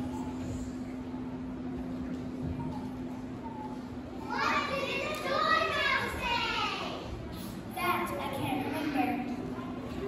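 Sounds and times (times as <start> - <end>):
low steady room hum: 0.0 - 10.0
child speaking: 4.2 - 7.1, 7.7 - 10.0.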